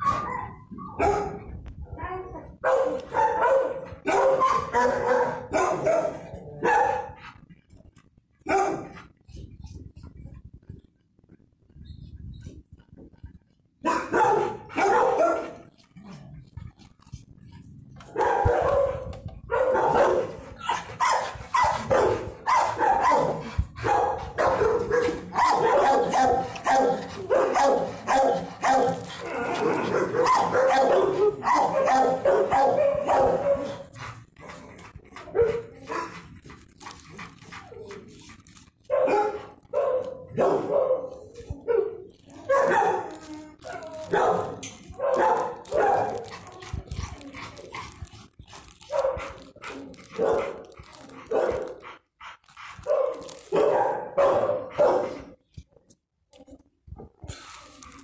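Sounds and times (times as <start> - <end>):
dogs barking: 0.0 - 1.5, 2.6 - 7.2, 8.5 - 9.0, 13.8 - 15.7, 18.0 - 34.0, 38.8 - 46.6, 48.6 - 51.8, 52.8 - 55.4.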